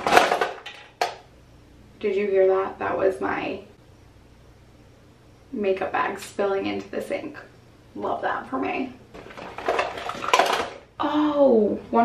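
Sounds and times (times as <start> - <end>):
makeup containers clattering: 0.0 - 1.2, 9.2 - 10.9.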